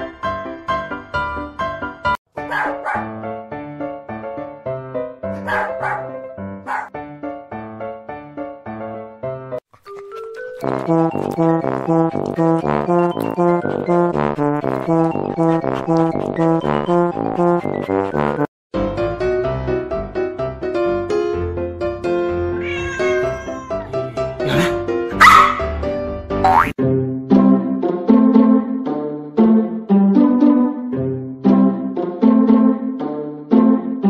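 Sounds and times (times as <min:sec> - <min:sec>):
background music: 0:00.0 - 0:34.0
small dog barking: 0:02.5 - 0:03.1, 0:05.4 - 0:06.9, 0:25.2 - 0:25.7
cat meowing: 0:22.5 - 0:24.1.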